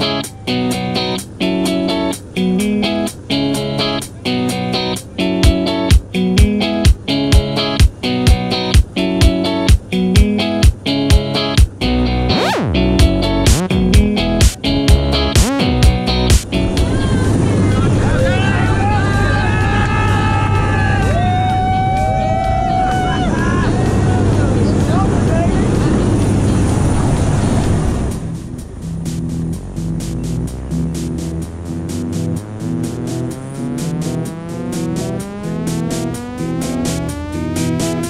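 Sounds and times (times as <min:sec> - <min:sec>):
music with steady beat: 0:00.0 - 0:16.9, 0:28.1 - 0:38.0
propeller engine drone: 0:00.0 - 0:38.0
people shouting and laughing: 0:16.7 - 0:24.6.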